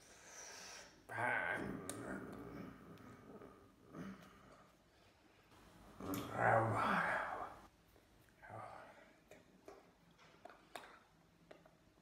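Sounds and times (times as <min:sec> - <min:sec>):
man's wordless vocal sounds: 0:01.1 - 0:04.4, 0:06.0 - 0:07.7.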